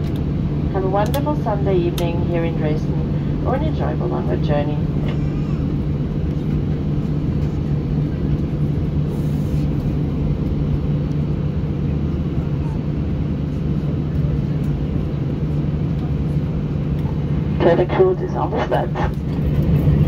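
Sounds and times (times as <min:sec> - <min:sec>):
constant low hum: 0:00.0 - 0:20.0
jet engines idling drone: 0:00.0 - 0:20.0.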